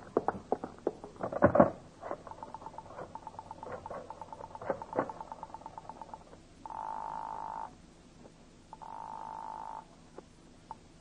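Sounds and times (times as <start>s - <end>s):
telephone ringing tone: 2.2s - 7.7s, 8.7s - 9.9s.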